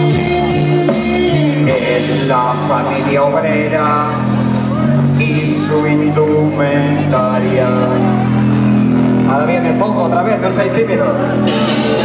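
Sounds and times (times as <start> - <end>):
held low synth chord: 0.0 - 12.0
singer's voice: 0.0 - 12.0.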